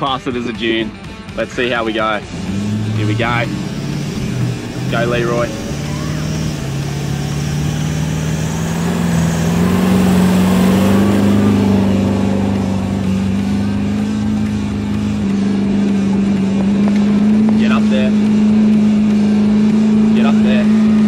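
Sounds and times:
diesel engine under heavy throttle: 0.0 - 21.0.

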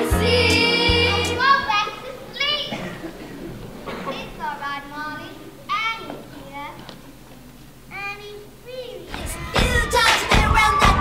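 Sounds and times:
children calling out: 0.3 - 6.4
stage show music with heavy bass beat: 9.2 - 11.0.

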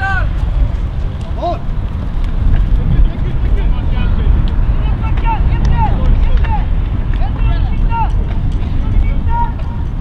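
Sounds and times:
distant people shouting: 0.0 - 0.5, 3.7 - 10.0
wind buffeting microphone: 0.0 - 10.0.

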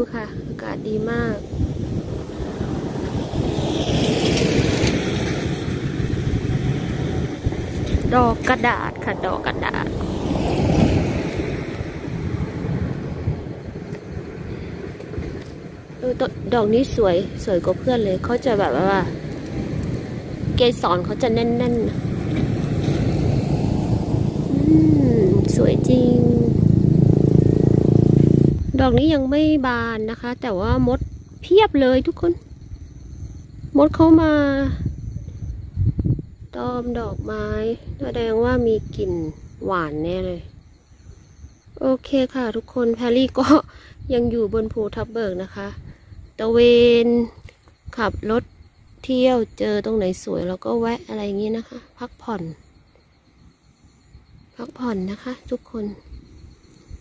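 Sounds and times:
motor vehicle engine running: 1.1 - 29.5.

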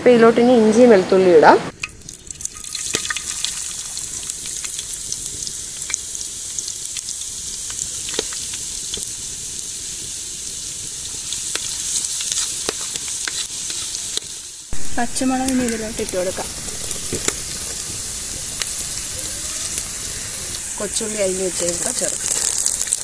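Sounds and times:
food sizzling in hot oil: 1.7 - 23.0.

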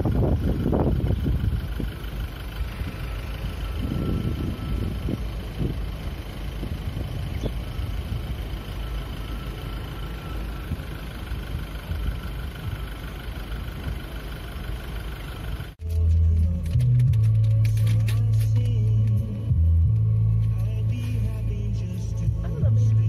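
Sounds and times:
vehicle engine idling: 0.0 - 23.0.

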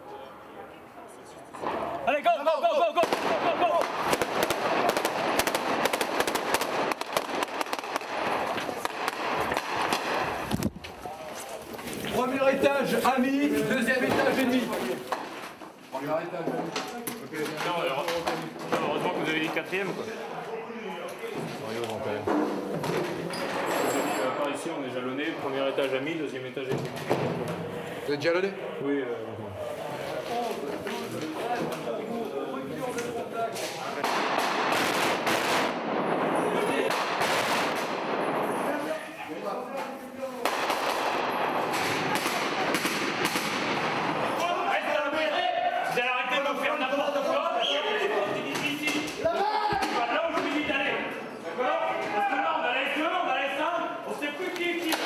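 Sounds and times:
automatic rifle fire: 3.0 - 10.5, 34.0 - 38.6, 40.4 - 44.3.

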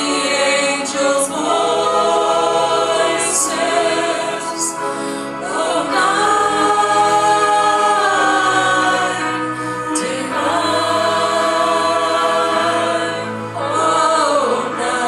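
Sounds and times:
group singing in harmony: 0.0 - 15.0.

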